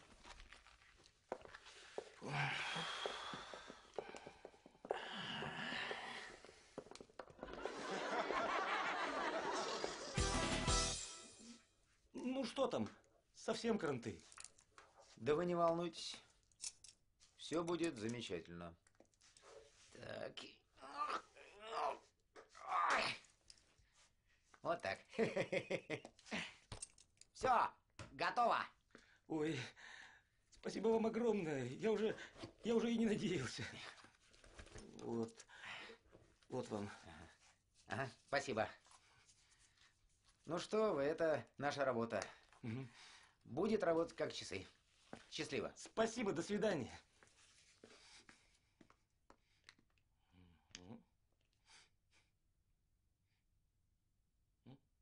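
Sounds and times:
soft breath: 1.6s - 6.9s.

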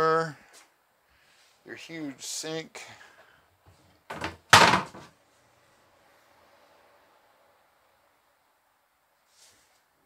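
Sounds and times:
sink cover knocking and rubbing: 4.1s - 5.0s.

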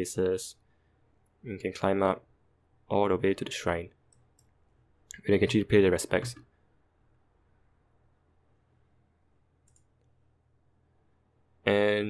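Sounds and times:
computer mouse click: 9.6s - 10.1s.

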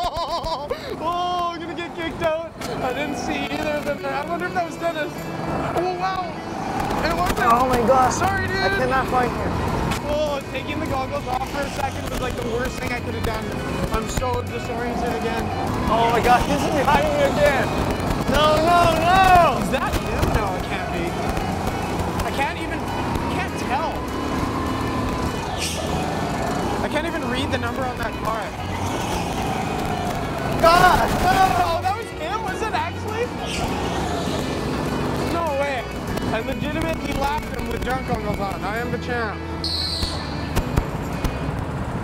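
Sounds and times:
go-kart engine running: 0.0s - 42.0s
tire squeals: 0.7s - 41.5s.

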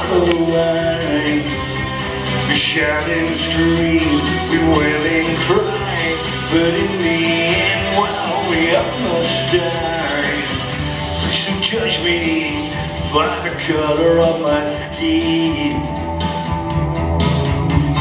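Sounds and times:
amplified electric guitar song: 0.0s - 18.0s.

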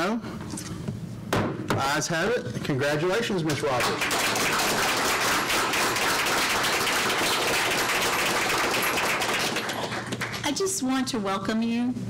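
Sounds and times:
people clapping: 3.4s - 10.7s.

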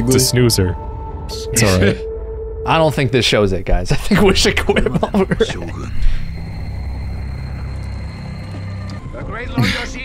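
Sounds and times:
faint high tone: 1.3s - 2.2s.

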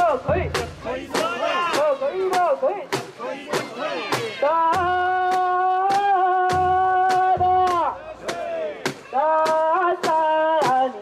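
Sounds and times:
people chanting in rhythm: 0.0s - 11.0s.

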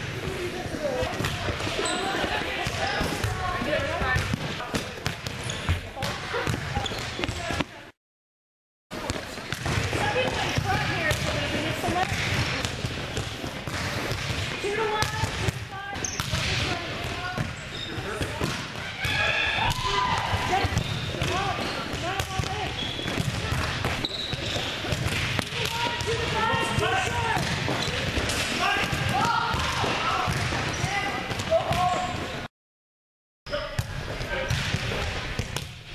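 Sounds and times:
volleyballs hit and bouncing: 0.0s - 7.9s, 8.9s - 32.5s, 33.5s - 35.9s
people talking: 0.3s - 4.8s, 9.9s - 12.2s, 25.4s - 32.2s.

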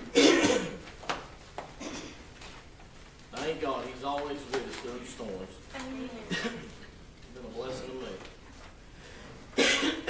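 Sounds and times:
person coughing: 0.0s - 0.8s, 1.8s - 2.2s, 6.3s - 6.7s, 9.6s - 10.0s.

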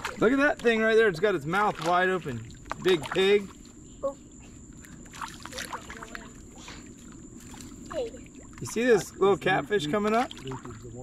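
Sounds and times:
soft water sounds: 0.0s - 11.0s.

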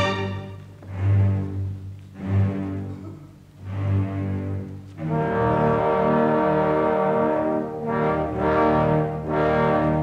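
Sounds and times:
orchestra brass chord: 5.1s - 10.0s.

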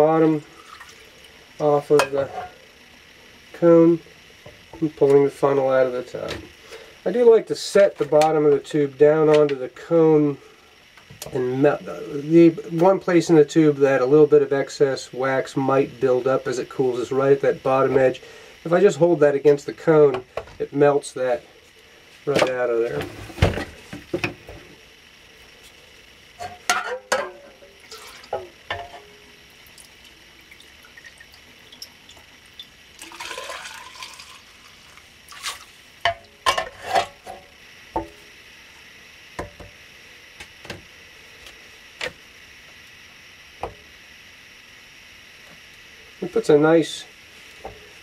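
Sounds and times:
melted wax pouring: 0.0s - 1.8s, 27.8s - 28.3s, 29.2s - 36.0s.

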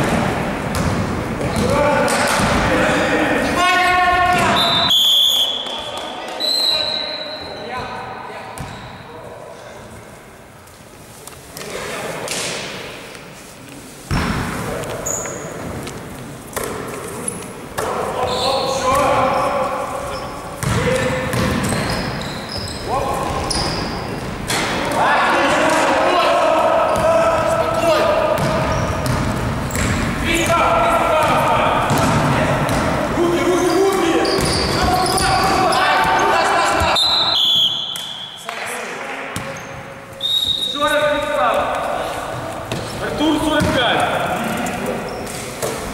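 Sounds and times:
players' voices: 0.0s - 10.2s, 11.1s - 45.9s
basketball dribbling on gym floor: 28.4s - 30.5s.

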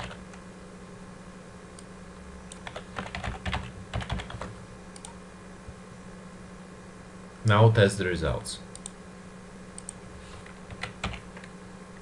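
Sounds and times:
keyboard typing: 0.0s - 0.2s, 2.5s - 5.2s, 10.7s - 11.5s.

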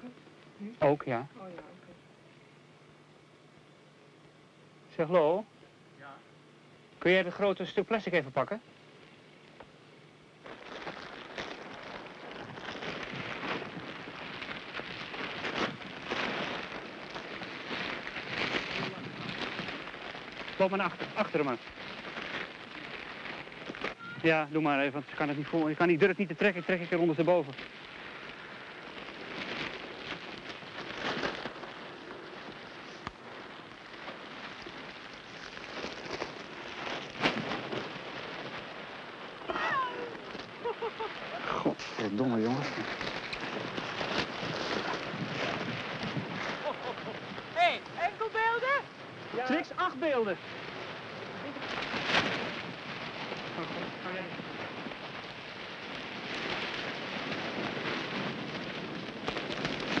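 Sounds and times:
plastic sheet rustling: 10.4s - 60.0s.

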